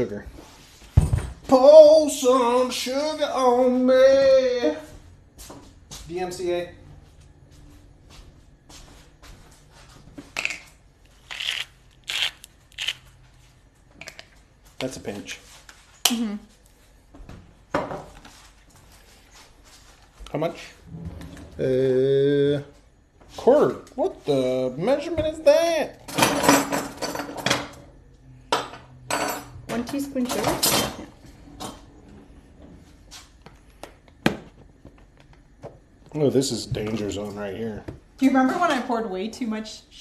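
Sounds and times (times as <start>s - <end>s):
low room hum: 0.0s - 40.0s
kitchen utensils clattering: 26.0s - 27.9s, 28.6s - 31.9s.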